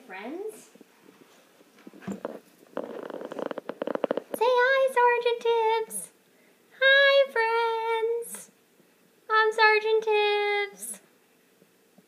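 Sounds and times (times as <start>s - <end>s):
cat purring: 1.9s - 4.4s.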